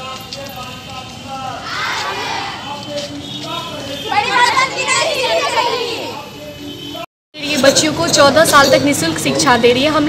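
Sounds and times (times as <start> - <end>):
outdoor background noise: 0.0 - 10.0
girls calling out: 4.1 - 6.2.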